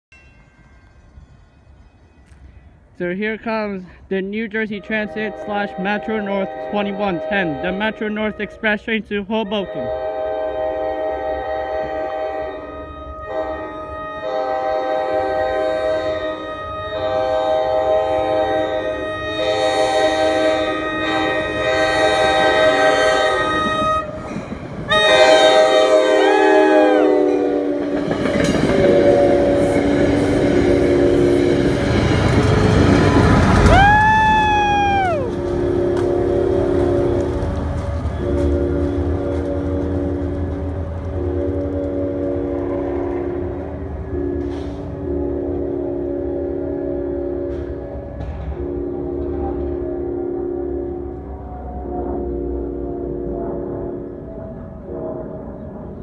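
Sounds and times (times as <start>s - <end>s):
train rushing and rumbling past: 0.2s - 56.0s
train air horn blasts: 4.7s - 24.3s, 24.9s - 56.0s.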